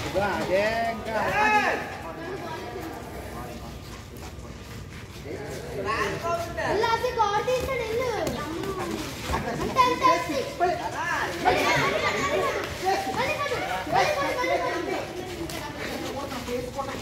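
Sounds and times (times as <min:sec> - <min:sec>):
children talking and calling out: 0:06.1 - 0:17.0.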